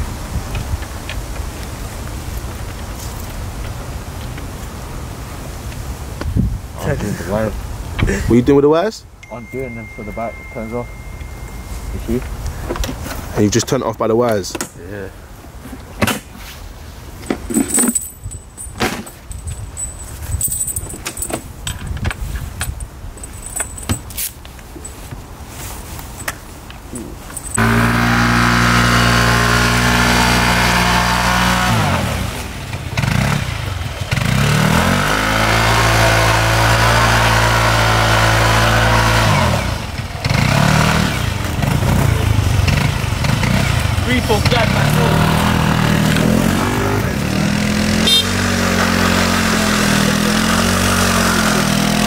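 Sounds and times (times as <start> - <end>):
scooter engine running: 27.6 - 52.0.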